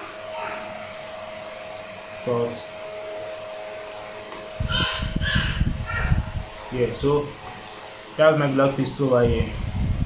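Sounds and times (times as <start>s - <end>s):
bird calling harshly: 4.6s - 6.2s.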